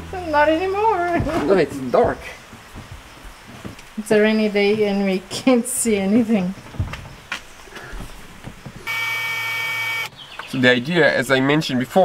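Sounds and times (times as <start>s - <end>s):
steady electric buzz: 8.9s - 10.1s.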